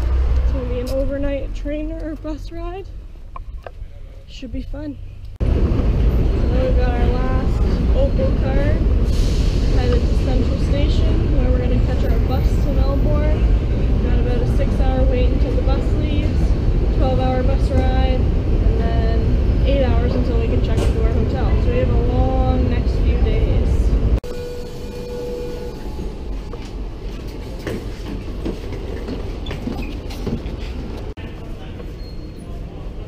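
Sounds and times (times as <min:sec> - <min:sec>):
loud low train rumble: 0:00.0 - 0:33.0
people's voices: 0:09.6 - 0:24.0
clicks and knocks in train carriage: 0:26.6 - 0:31.1.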